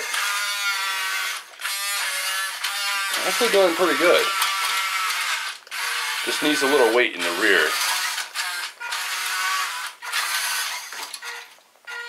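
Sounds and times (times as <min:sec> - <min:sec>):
toy truck electric motor whining: 0:00.0 - 0:12.0.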